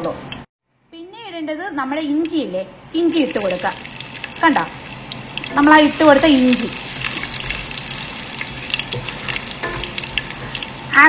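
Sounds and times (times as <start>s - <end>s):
ginger sizzling in hot oil: 3.1s - 11.0s
small crackles: 3.3s - 11.0s.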